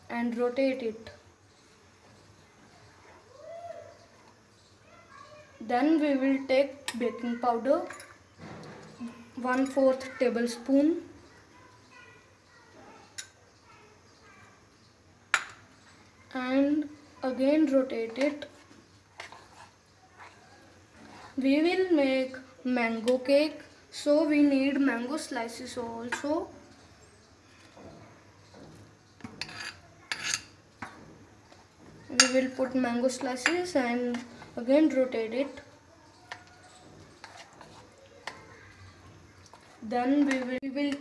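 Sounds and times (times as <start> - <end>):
spoon scraping batter: 17.6 - 21.6, 27.6 - 41.0.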